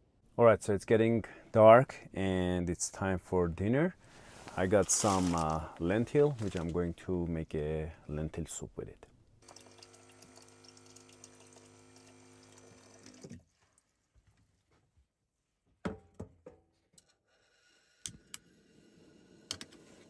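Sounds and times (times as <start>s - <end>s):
water running from tap: 9.4s - 13.4s.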